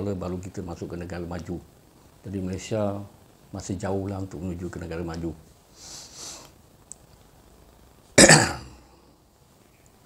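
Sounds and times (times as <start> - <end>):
man coughing: 8.2 - 8.8.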